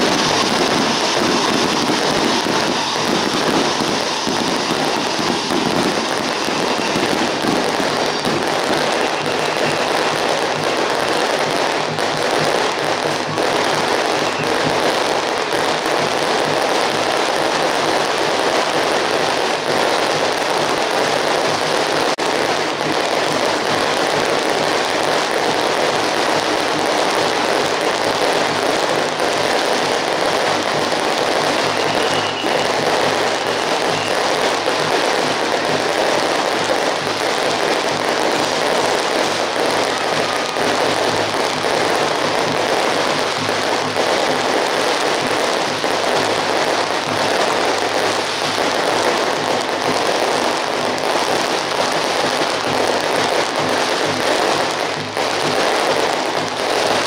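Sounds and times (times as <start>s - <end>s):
firecrackers crackling: 0.0s - 57.0s.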